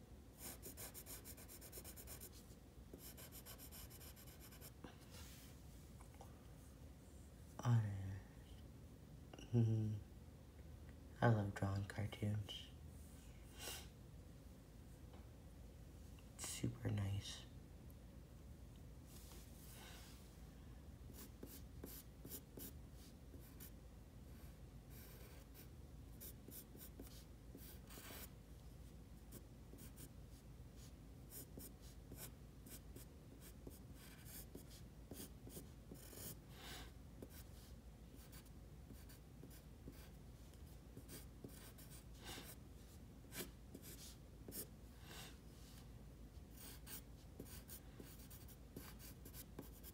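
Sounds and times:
pencil scratching on paper: 0:00.4 - 0:04.8, 0:21.2 - 0:23.7, 0:24.9 - 0:28.3, 0:29.3 - 0:30.1, 0:30.8 - 0:36.4, 0:38.2 - 0:40.2, 0:41.0 - 0:42.6, 0:43.3 - 0:44.7, 0:46.5 - 0:49.9.

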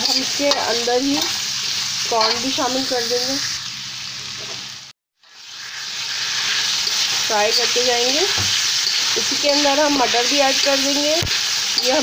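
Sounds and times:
vegetables sizzling in hot oil: 0:00.0 - 0:12.0
spatula stirring in a pan: 0:05.4 - 0:12.0.

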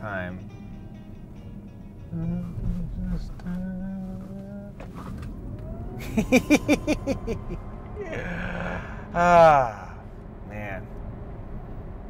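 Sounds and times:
man holding low notes: 0:00.0 - 0:11.1
loud laughter: 0:06.0 - 0:09.8.

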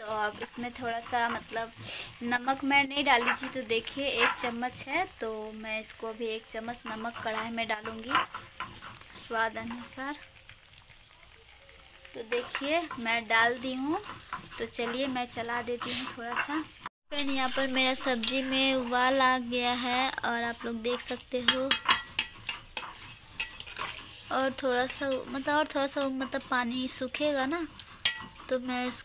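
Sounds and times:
curry boiling: 0:00.0 - 0:29.0
metal ladle scraping and clinking pan: 0:00.1 - 0:05.0, 0:06.4 - 0:10.3, 0:12.2 - 0:29.0
person speaking: 0:14.6 - 0:21.8.

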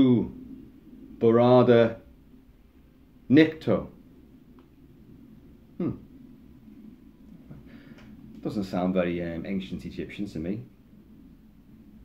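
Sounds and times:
faint breath-like hiss: 0:00.0 - 0:12.0
steady low hum: 0:00.0 - 0:12.0.

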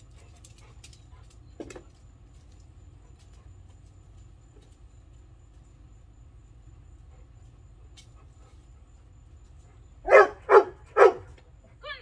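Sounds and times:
large dog barking: 0:10.0 - 0:11.4.

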